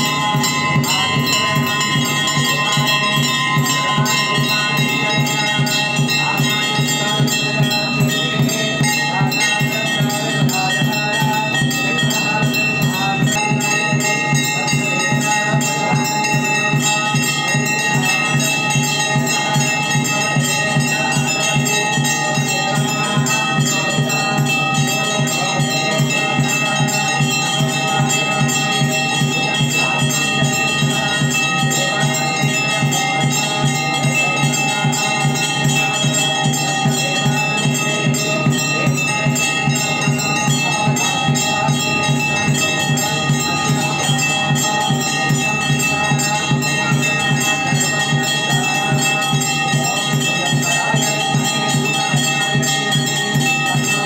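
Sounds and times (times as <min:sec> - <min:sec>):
temple bells ringing: 0:00.0 - 0:54.0.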